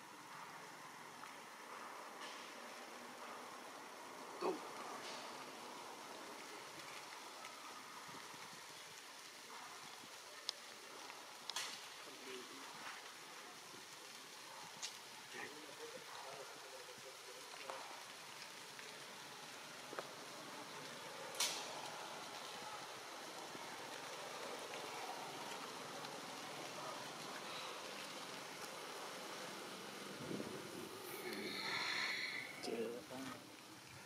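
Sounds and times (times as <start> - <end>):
faint outdoor background hiss: 0.0 - 34.0.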